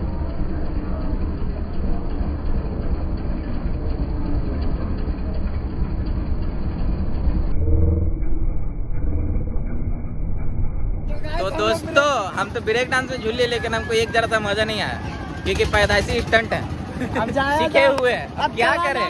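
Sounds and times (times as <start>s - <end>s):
fairground ride machinery rumble: 0.0s - 19.0s.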